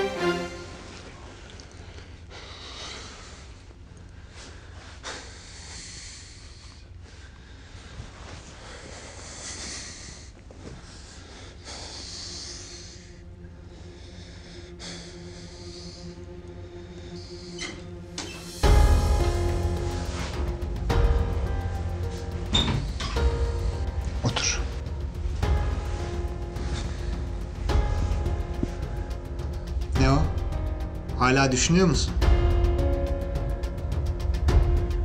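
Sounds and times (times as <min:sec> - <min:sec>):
dramatic music with deep bass: 0:00.0 - 0:02.3, 0:11.4 - 0:35.0
man breathing heavily and sighing: 0:01.6 - 0:31.2.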